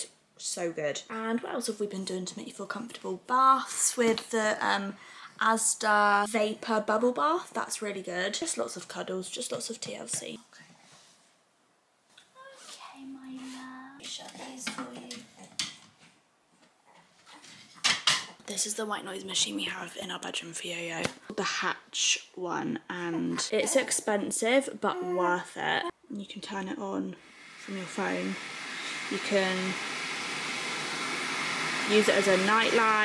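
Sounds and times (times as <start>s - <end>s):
white noise hiss: 26.6s - 33.0s.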